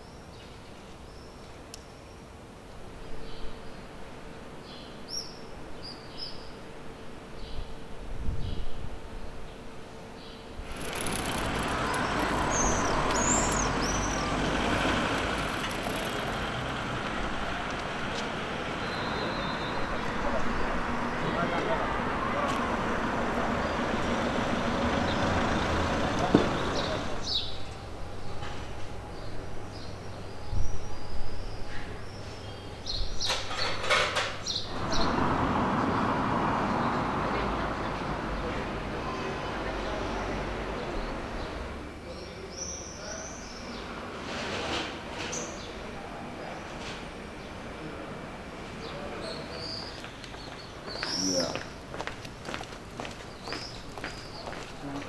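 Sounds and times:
street and traffic noise: 0:00.0 - 0:55.0
passing cars and trucks: 0:10.6 - 0:30.1, 0:33.5 - 0:42.1
high bird chirps: 0:10.7 - 0:17.6, 0:18.6 - 0:20.2.

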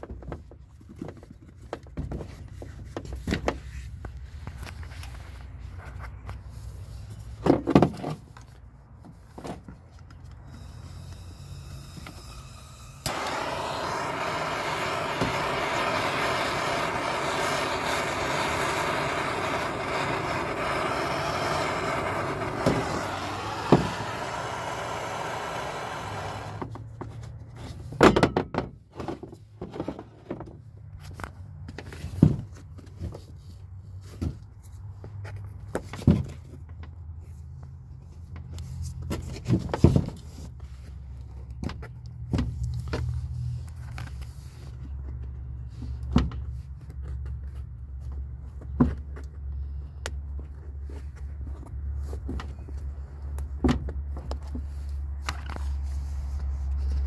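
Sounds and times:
gas torch hissing: 0:10.5 - 0:26.7.

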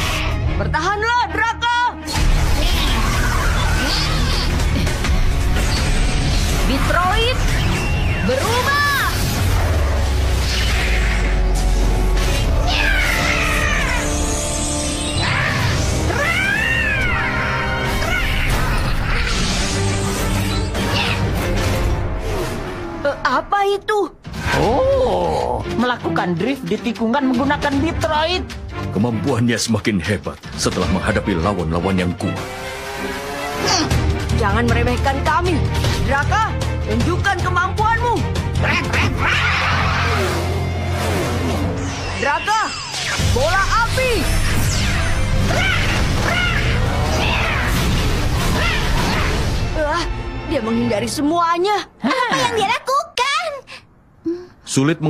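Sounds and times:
background music: 0:00.0 - 0:53.3
screeching creature cry: 0:02.5 - 0:04.8, 0:12.3 - 0:14.3, 0:15.2 - 0:19.6, 0:44.5 - 0:49.5
robot creature high cry: 0:44.9 - 0:47.8.

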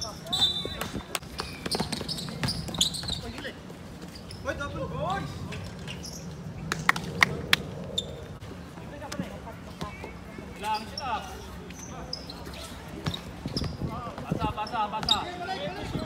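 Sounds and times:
basketball bouncing on court: 0:01.3 - 0:03.4.

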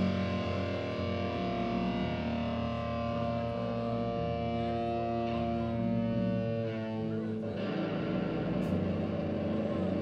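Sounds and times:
bass line: 0:00.0 - 0:10.0
electric guitar: 0:00.0 - 0:10.0
keyboard chords: 0:00.0 - 0:10.0.

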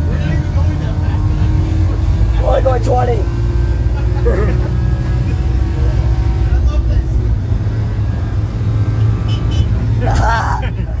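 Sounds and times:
road noise: 0:00.0 - 0:11.0
van engine drone: 0:00.0 - 0:11.0.

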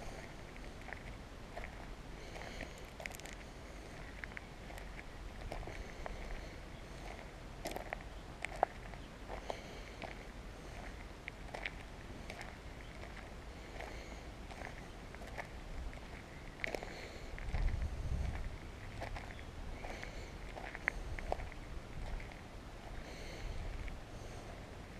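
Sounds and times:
footsteps on gravel: 0:00.0 - 0:24.0.

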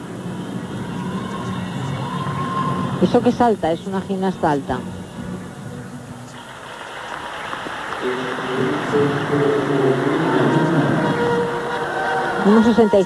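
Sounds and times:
music playing in hall: 0:04.4 - 0:13.0
crowd applauding and cheering: 0:06.3 - 0:13.0.

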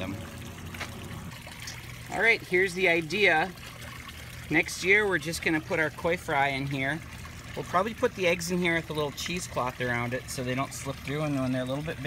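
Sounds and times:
waterfall splashing into pond: 0:00.0 - 0:12.0.

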